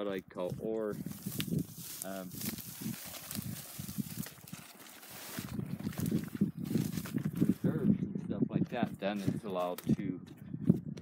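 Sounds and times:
footsteps crunching on gravel: 0.4 - 7.9.

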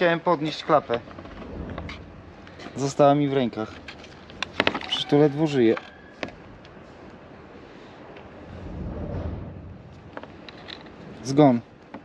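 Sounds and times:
low rumble: 1.1 - 2.6, 8.3 - 10.8.

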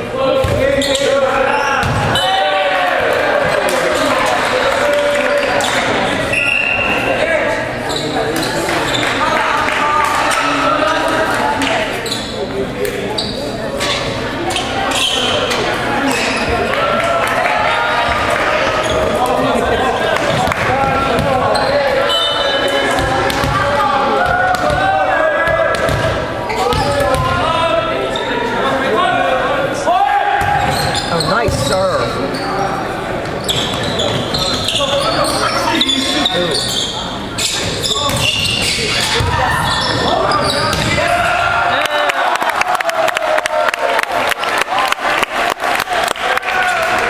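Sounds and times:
volleyball hits echoing: 1.8 - 2.4, 20.2 - 21.5, 22.7 - 27.5, 40.6 - 41.5.

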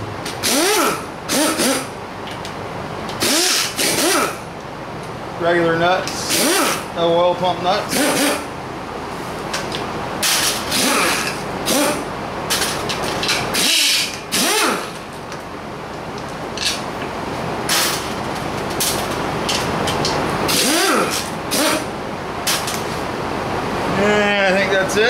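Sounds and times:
pneumatic impact wrench bursts: 0.3 - 2.0, 3.2 - 4.4, 6.2 - 6.9, 7.9 - 8.5, 10.2 - 15.0, 17.7 - 18.1, 20.5 - 22.8.

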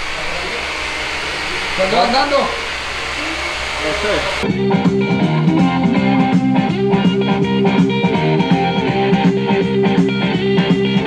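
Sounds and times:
fan-like rushing noise: 0.0 - 4.5
low hum: 0.0 - 10.6.

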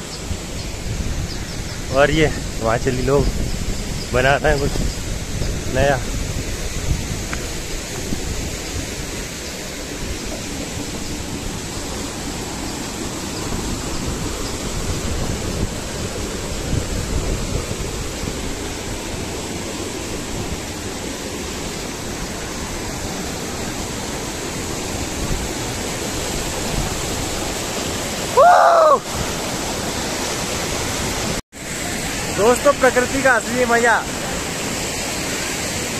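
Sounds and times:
stream rushing over boulders: 0.0 - 35.9.

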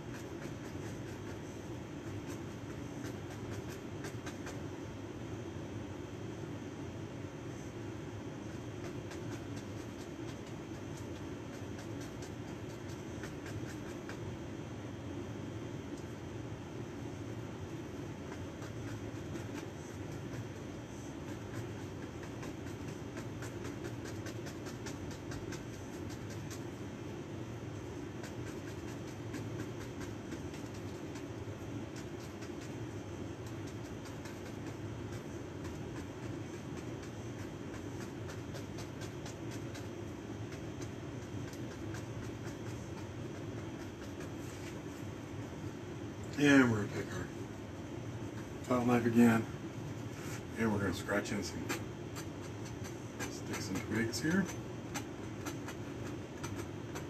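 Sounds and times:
low room hum: 0.0 - 57.0.

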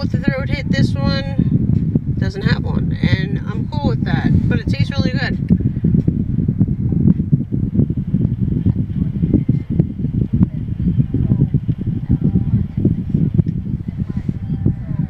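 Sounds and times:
low rumble inside a car: 0.0 - 15.0.

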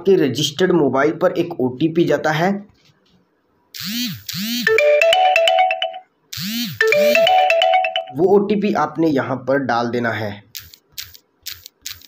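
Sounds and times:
phone message alert jingle: 4.6 - 6.1, 6.8 - 8.2.

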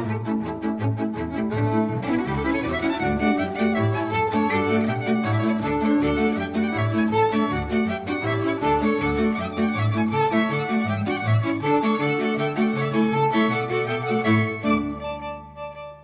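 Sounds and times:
bowed double bass: 0.0 - 16.0
violins playing folk tune: 0.0 - 16.0.

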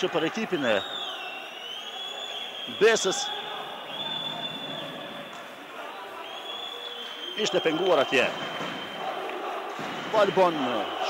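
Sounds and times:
man commentating: 0.0 - 0.9, 2.7 - 6.4, 7.3 - 8.4, 10.1 - 11.0
low murmur of sports hall: 0.0 - 11.0.

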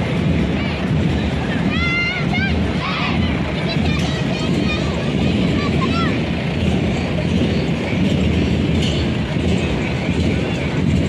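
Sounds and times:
crowd voices: 0.0 - 11.0
low engine rumble: 0.0 - 11.0.

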